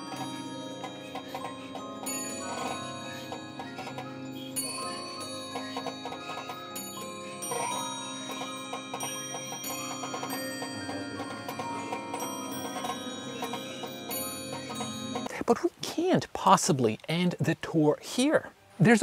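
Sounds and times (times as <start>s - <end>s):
music box playing bell-like tune: 0.0s - 15.3s.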